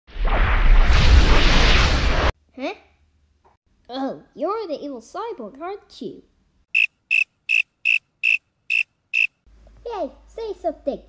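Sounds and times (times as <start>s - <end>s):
cricket chirping: 6.7s - 9.4s.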